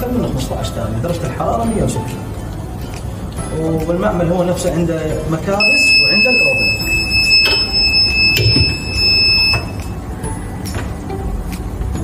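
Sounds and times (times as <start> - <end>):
timer buzzer high-pitched beep: 5.6 - 10.0.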